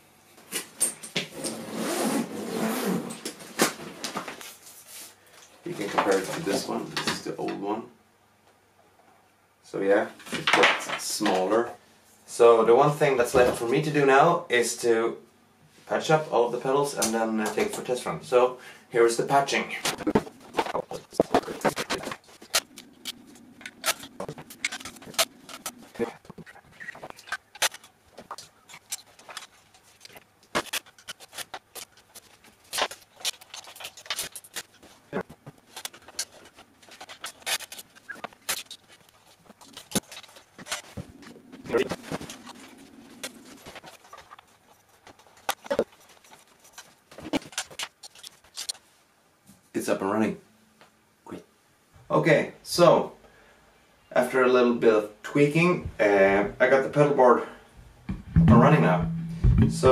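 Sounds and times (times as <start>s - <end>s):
pedals and cables knocking: 58.1s - 59.9s.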